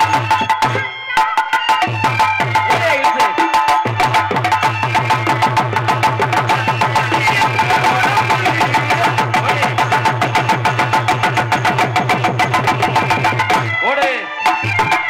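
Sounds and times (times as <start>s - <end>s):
hand drums beating: 0.0s - 15.0s
harmonium held notes: 0.0s - 15.0s.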